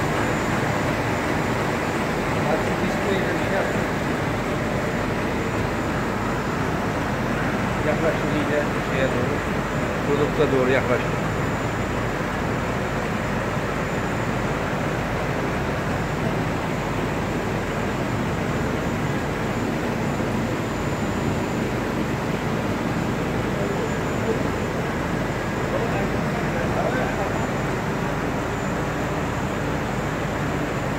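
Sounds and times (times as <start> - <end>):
printing press running: 0.0 - 19.5.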